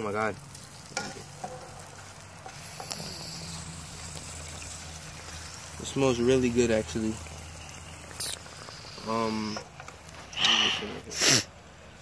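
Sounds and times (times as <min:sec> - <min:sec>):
fish frying in oil: 0:00.0 - 0:10.8.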